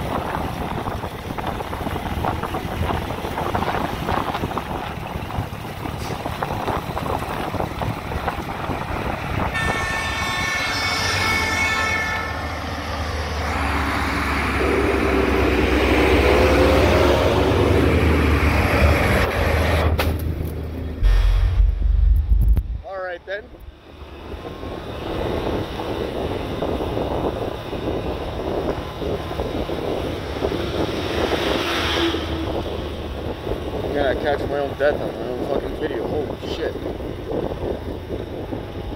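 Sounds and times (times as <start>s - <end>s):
diesel truck engine rumbling: 0.0s - 38.9s
wind and road rush: 0.0s - 38.9s
horn sounding: 9.5s - 12.6s.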